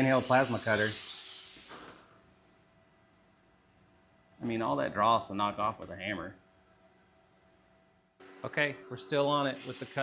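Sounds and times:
plasma torch blowing air: 0.0 - 2.1, 9.5 - 10.0.

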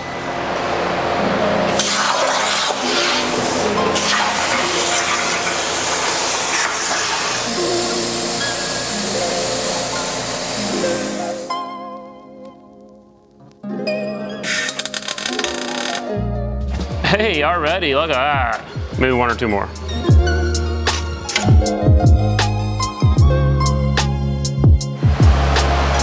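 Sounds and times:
background music: 0.7 - 26.0
plasma torch hissing: 1.7 - 11.5.

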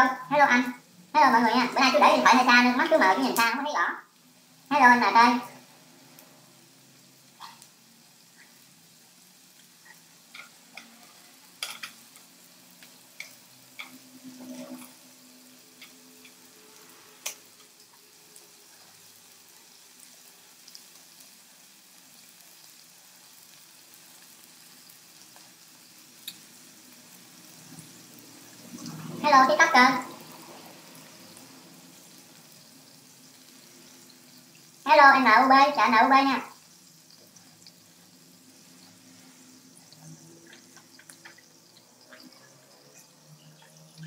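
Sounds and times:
food sizzling on griddle: 0.0 - 44.0
chopsticks clicking against pan: 10.3 - 11.0, 13.2 - 14.0.

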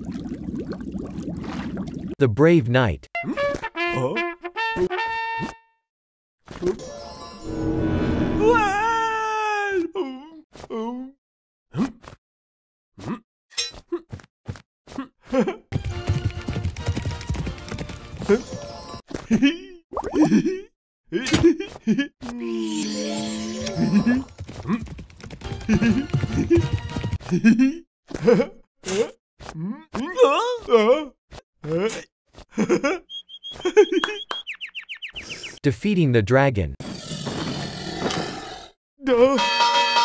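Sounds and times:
music: 3.2 - 5.7, 15.8 - 19.0, 25.4 - 27.2
horse hooves galloping: 15.8 - 18.7, 24.0 - 27.3
harsh dragon roar: 36.8 - 38.8.

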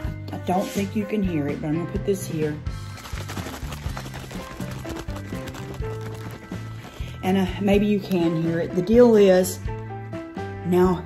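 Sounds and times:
background music: 0.0 - 11.0
aerosol can rattling when shaken: 2.7 - 8.3.

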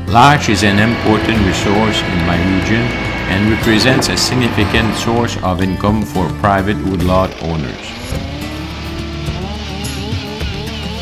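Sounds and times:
background music: 0.0 - 11.0
chainsaw engine idling: 0.1 - 11.0.

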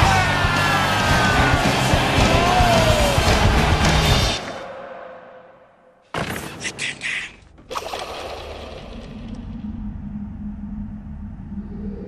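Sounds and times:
low rumbling drone: 8.4 - 12.0
steady low hum: 9.2 - 12.0.

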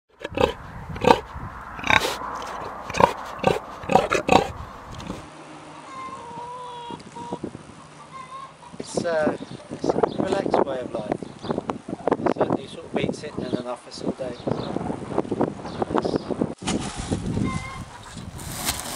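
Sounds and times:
pigs grunting: 0.1 - 5.3
thin drawn-out pig calls: 0.2 - 5.3.

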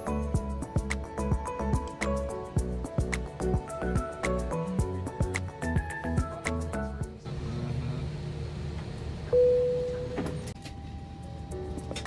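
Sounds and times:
electronic cabin chime: 9.3 - 12.0.

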